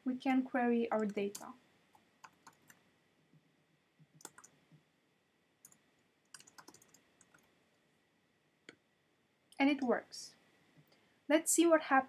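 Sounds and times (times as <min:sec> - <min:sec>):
typing on keyboard: 0:01.0 - 0:01.5, 0:02.2 - 0:02.8, 0:04.2 - 0:04.6, 0:05.6 - 0:07.5.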